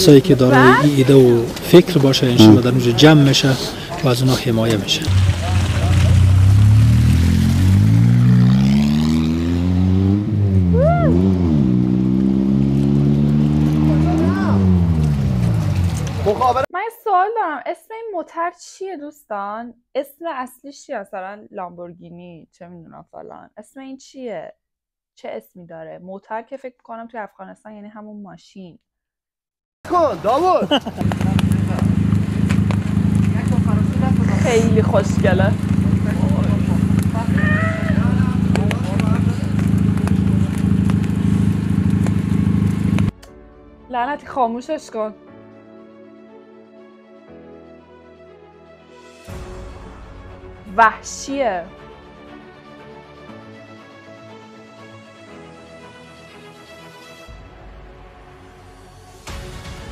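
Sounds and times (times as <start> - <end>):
sports car engine revving: 4.6 - 16.6, 30.9 - 43.2
sports car engine idling: 31.0 - 43.1.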